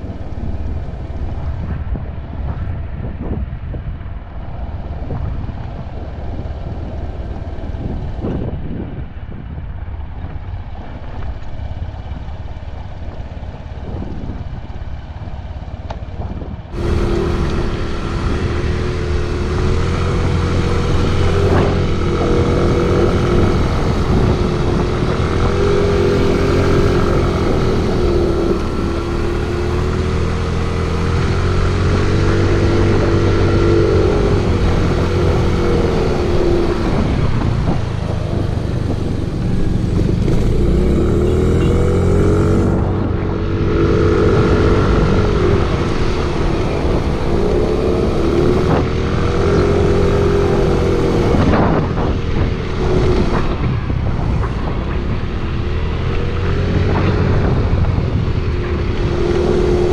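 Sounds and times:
motorcycle engine revving: 0:10.3 - 0:59.9.

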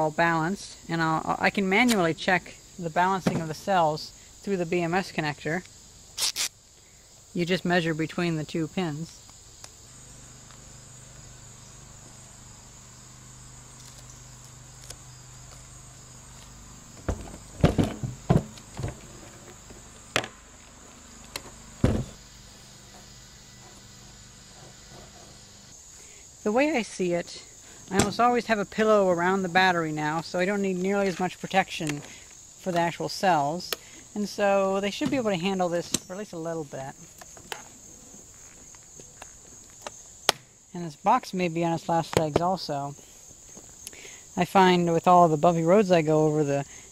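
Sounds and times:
insects chirring: 0:00.0 - 0:46.9.

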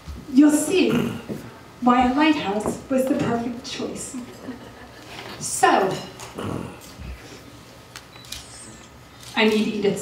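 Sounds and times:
low room noise: 0:00.0 - 0:10.0
person whimpering: 0:06.4 - 0:06.9.

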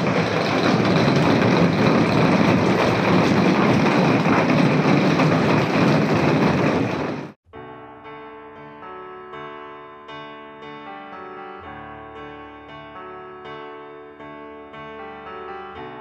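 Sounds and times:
heavy rain on plastic roof: 0:00.0 - 0:07.4
soft piano music: 0:07.4 - 0:16.0.

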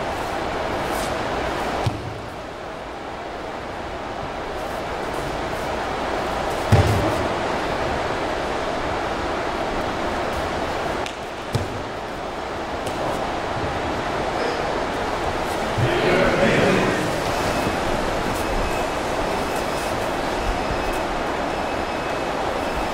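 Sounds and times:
steady hall hum: 0:00.0 - 0:22.9.

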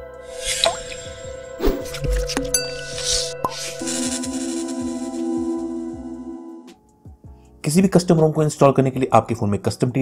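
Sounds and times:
electronic music: 0:00.0 - 0:06.8
sustained synth tone: 0:00.3 - 0:06.3.

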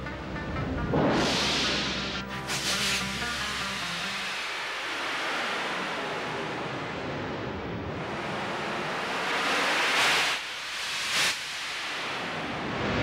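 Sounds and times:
steady rushing noise: 0:00.4 - 0:13.0.

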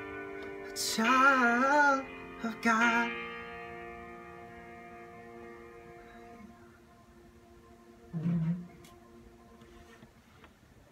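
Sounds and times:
sustained chord ringing: 0:00.0 - 0:09.9.

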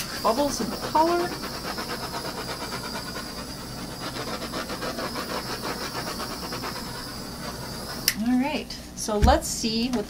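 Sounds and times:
torch flame hissing: 0:00.0 - 0:08.6.

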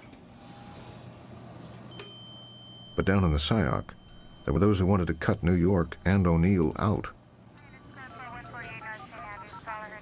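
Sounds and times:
low steady hum: 0:01.5 - 0:10.0
elevator chime ding: 0:01.9 - 0:06.9.

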